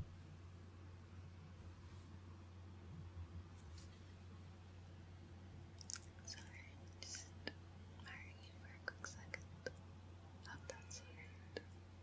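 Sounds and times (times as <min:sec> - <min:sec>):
person whispering: 0:05.9 - 0:09.8, 0:10.5 - 0:11.7.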